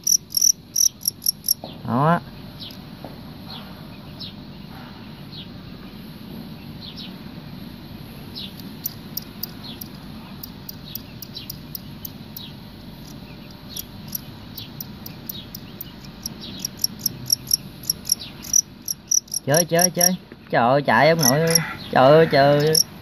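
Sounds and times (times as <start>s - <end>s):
cricket chirping: 0.0s - 1.7s, 8.3s - 20.2s, 21.1s - 21.8s, 22.5s - 23.0s.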